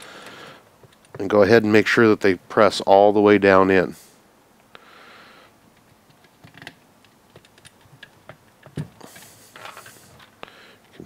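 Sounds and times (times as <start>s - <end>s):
plastic parts clicking and tapping: 5.8s - 11.0s.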